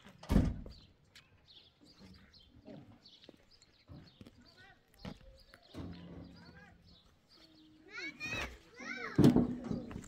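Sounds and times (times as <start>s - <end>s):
children calling out: 7.8s - 9.4s.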